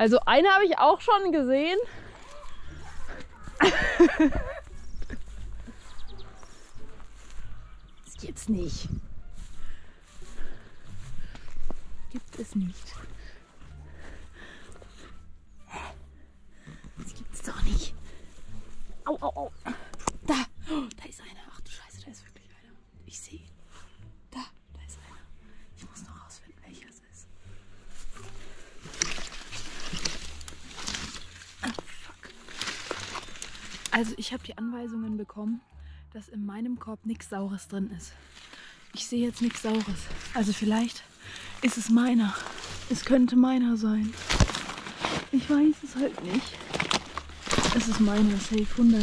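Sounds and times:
bush leaves and twigs rustling: 0.0s - 15.2s, 27.4s - 34.4s, 38.0s - 49.0s
footsteps through grass: 1.5s - 15.6s, 16.6s - 19.5s, 27.3s - 34.4s, 38.0s - 49.0s
person laughing: 3.3s - 5.2s.

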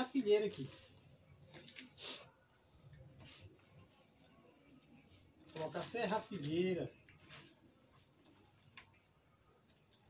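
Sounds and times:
leaves rustling in plastic bucket: 0.0s - 2.0s.

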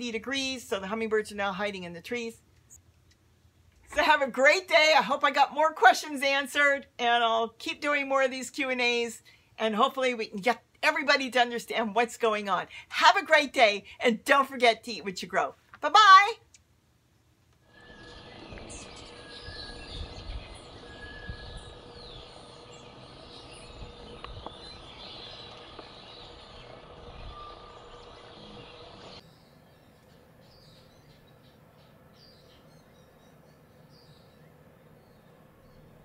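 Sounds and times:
small birds chirping: 17.6s - 36.0s.

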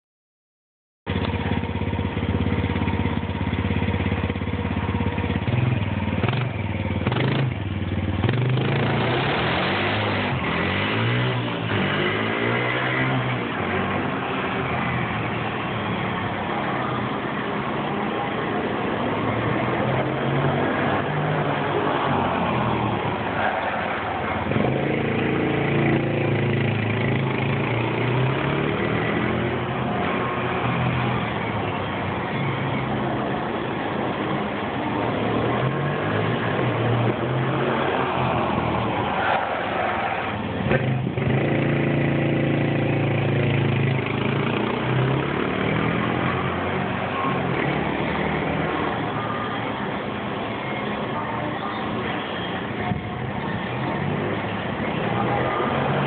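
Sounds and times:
vehicle engine running: 1.1s - 9.1s.

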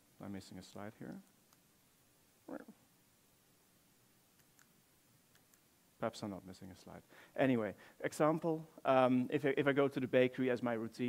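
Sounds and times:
person murmuring: 2.5s - 2.8s.

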